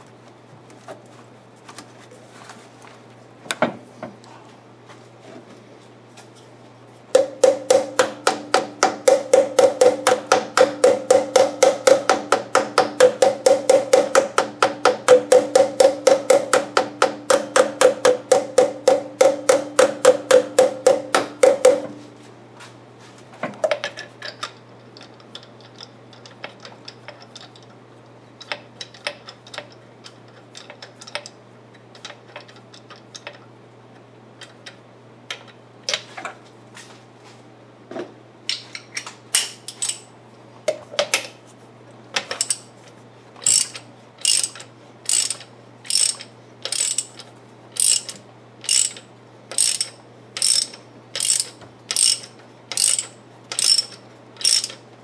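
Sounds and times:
ratchet wrench clicking: 0:39.4 - 0:40.1, 0:42.3 - 0:42.7, 0:43.4 - 0:47.2, 0:47.8 - 0:54.8.

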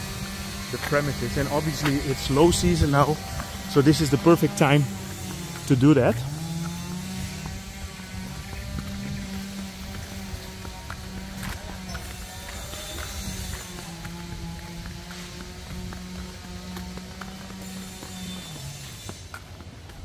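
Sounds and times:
footsteps on concrete: 0:00.0 - 0:20.0
motor engine droning: 0:00.0 - 0:20.0.

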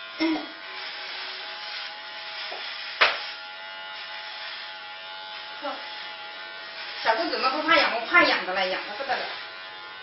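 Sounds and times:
electric hair clippers buzzing: 0:00.0 - 0:10.0.

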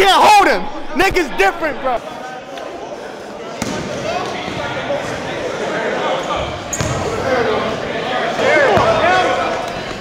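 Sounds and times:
chatter of spectators: 0:00.0 - 0:10.0.

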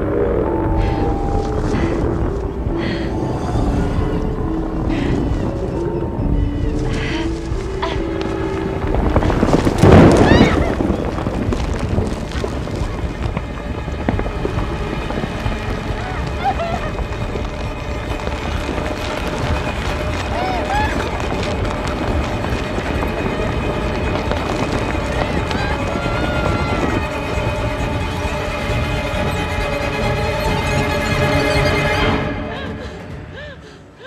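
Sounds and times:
sustained musical tones: 0:00.0 - 0:10.0
rushing movement: 0:00.0 - 0:32.2
dark low rumbling score: 0:00.0 - 0:34.0
woman gasping and whimpering: 0:32.5 - 0:34.0.

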